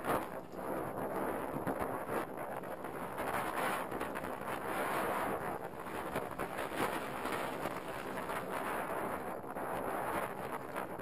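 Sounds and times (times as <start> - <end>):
bike tyres rolling on rock: 0.0 - 11.0
wind on microphone: 0.0 - 11.0.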